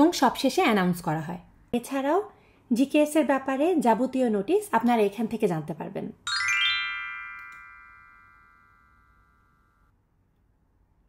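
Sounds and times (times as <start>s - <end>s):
bright bell-like chime: 6.3s - 9.9s.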